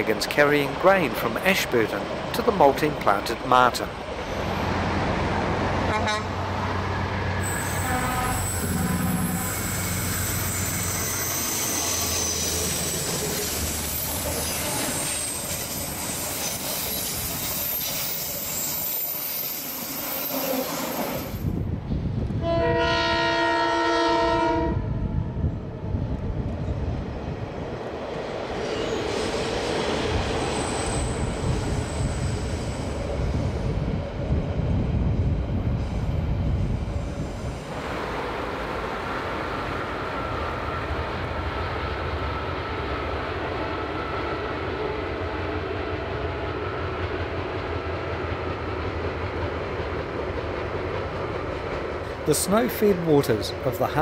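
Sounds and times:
freight train crossing bridge: 0:00.0 - 0:54.0
train carriages rumbling on rails: 0:00.0 - 0:54.0
locomotive horn chord: 0:05.9 - 0:06.4, 0:07.7 - 0:09.6, 0:22.4 - 0:24.9.

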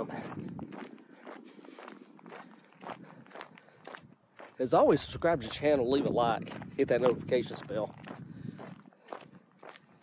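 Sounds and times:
footsteps on unpaved road: 0:00.0 - 0:10.0.

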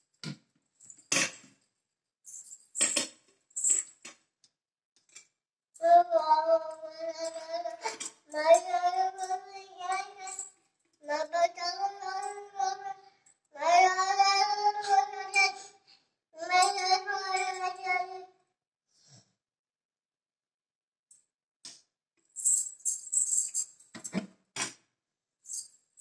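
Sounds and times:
child singing long notes: 0:05.8 - 0:10.4, 0:11.0 - 0:13.0, 0:13.6 - 0:15.7, 0:16.4 - 0:18.3.

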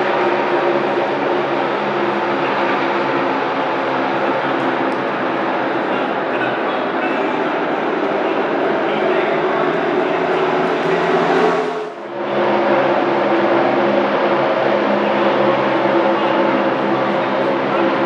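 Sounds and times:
race car engines droning: 0:00.0 - 0:18.0.

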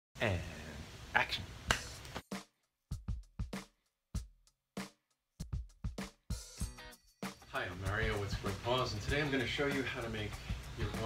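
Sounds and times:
finger snap: 0:01.6 - 0:02.2
man speaking: 0:07.5 - 0:11.0.

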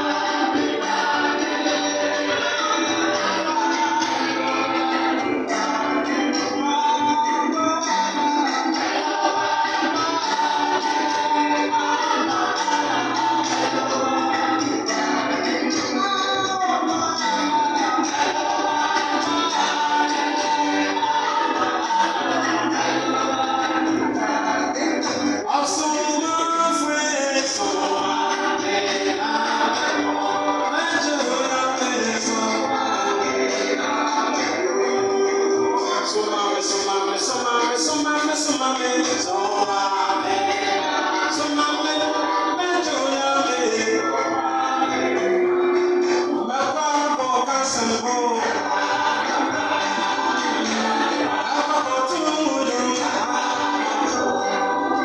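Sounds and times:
choir singing gospel music: 0:00.0 - 0:55.0.

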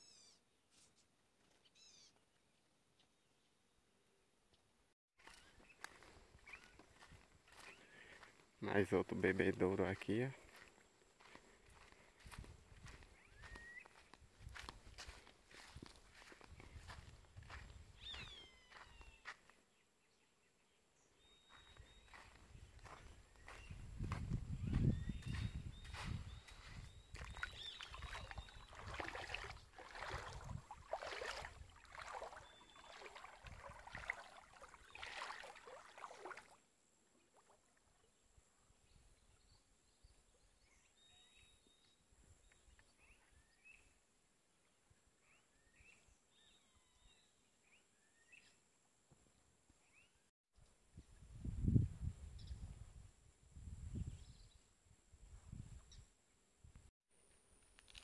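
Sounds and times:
bird chirps: 0:01.6 - 0:02.2, 0:05.2 - 0:08.0, 0:17.5 - 0:19.4, 0:21.2 - 0:23.9, 0:24.6 - 0:28.9
footsteps in dry grass: 0:05.2 - 0:08.6, 0:09.2 - 0:19.6, 0:21.5 - 0:36.2.

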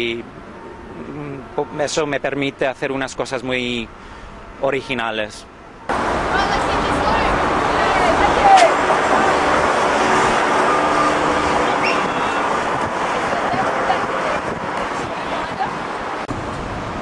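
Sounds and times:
traffic noise: 0:00.0 - 0:17.0.

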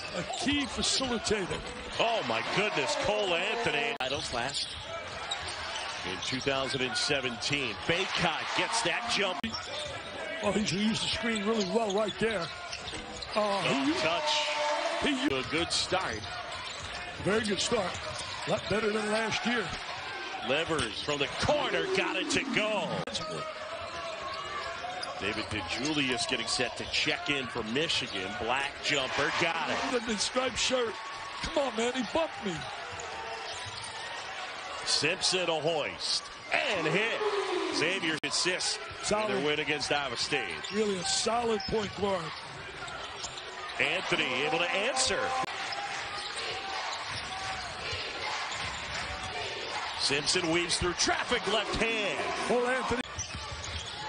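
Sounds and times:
crowd noise: 0:00.0 - 0:54.0.

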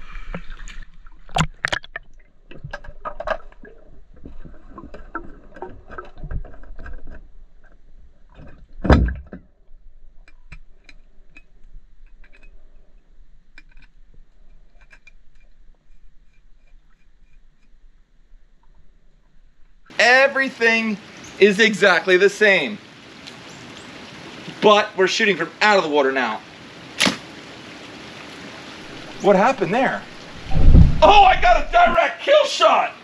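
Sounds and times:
scattered ticks underwater: 0:00.0 - 0:08.8, 0:09.4 - 0:26.9
loud underwater thump: 0:08.8 - 0:09.4, 0:27.0 - 0:27.3.

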